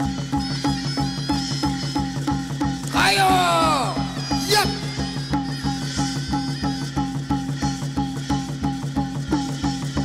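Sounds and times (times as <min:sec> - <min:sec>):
drums keeping even beat: 0:00.0 - 0:10.0.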